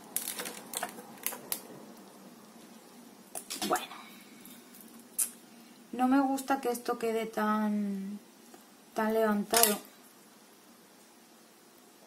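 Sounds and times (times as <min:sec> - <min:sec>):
faint room noise: 0:00.0 - 0:12.0.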